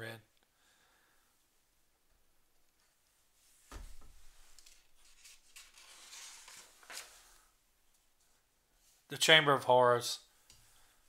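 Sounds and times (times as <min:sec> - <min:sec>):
paper rustling and sliding: 0:04.2 - 0:07.5.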